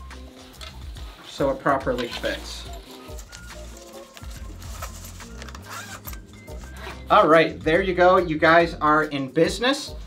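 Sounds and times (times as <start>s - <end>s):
background music with stepping bass: 0.0s - 10.0s
hands rustling and clicking cover: 2.0s - 6.7s.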